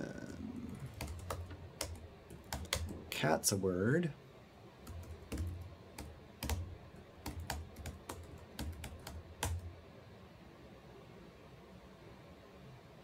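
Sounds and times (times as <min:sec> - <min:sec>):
computer keyboard typing: 0:00.8 - 0:03.0, 0:04.8 - 0:09.7.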